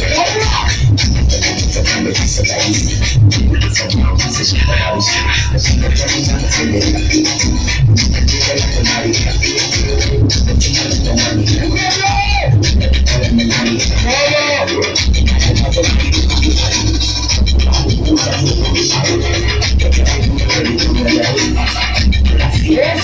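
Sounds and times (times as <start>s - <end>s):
dance music with heavy bass: 0.0s - 23.0s.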